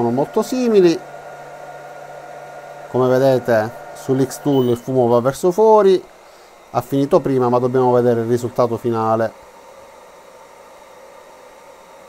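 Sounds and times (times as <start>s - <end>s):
fan whirring: 0.0s - 12.0s.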